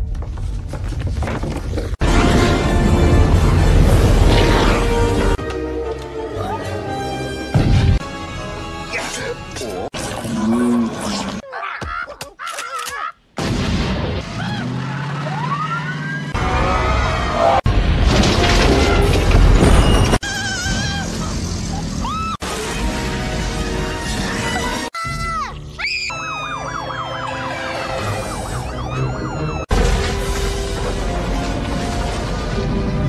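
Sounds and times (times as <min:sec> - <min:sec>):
police siren wailing: 0:26.1 - 0:29.7.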